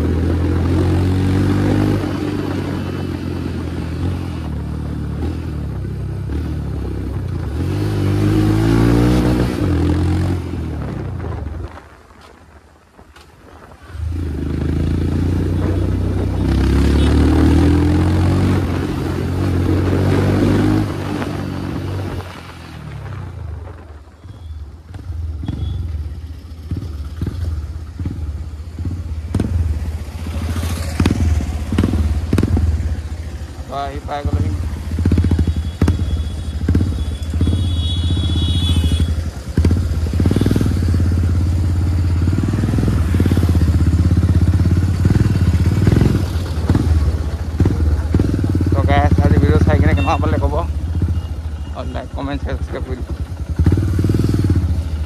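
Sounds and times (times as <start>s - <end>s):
motorcycle engine running: 14.0s - 55.0s.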